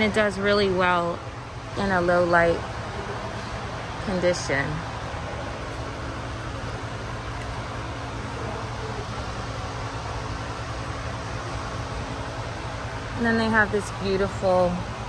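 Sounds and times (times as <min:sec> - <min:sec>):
large fan running: 0:00.0 - 0:15.0.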